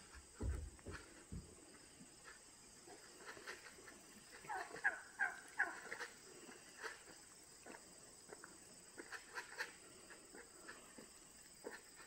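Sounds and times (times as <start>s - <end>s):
turkeys calling: 2.9s - 7.8s.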